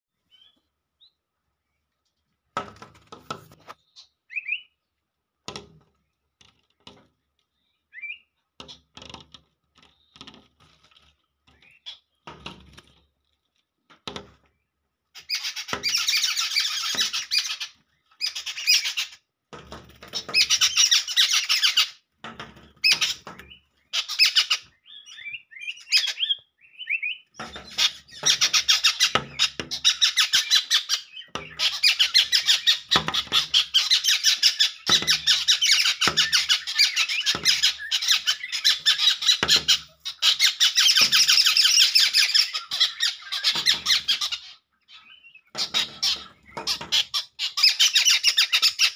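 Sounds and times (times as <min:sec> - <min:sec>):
birds chirping: 0:00.1 - 0:48.9.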